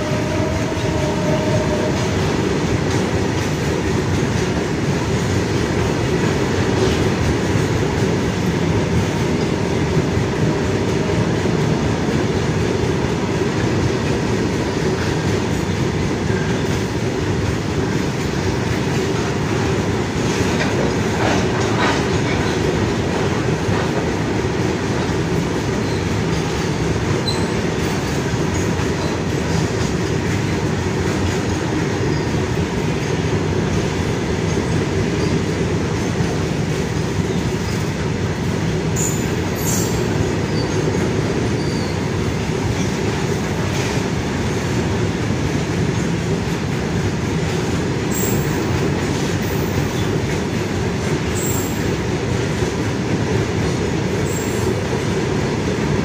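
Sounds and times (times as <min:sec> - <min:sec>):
sharp high train sounds: 0:00.0 - 0:13.4, 0:14.3 - 0:55.2
freight train wheels rumbling: 0:00.0 - 0:56.0.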